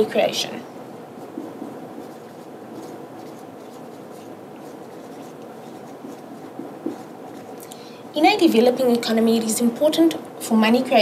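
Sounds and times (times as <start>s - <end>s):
low room hum: 0.0s - 11.0s
pen scratching on paper: 1.2s - 7.6s.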